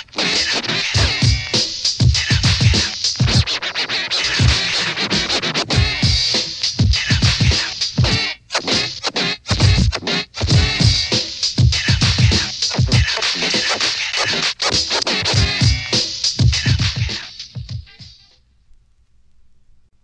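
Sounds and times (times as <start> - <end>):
turntable scratching: 0.0 - 18.4
drum beat: 0.2 - 3.6, 4.2 - 18.2.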